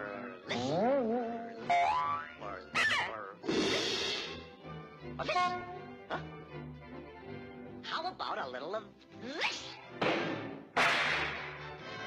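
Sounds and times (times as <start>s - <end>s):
cartoon soundtrack music: 0.0s - 12.0s.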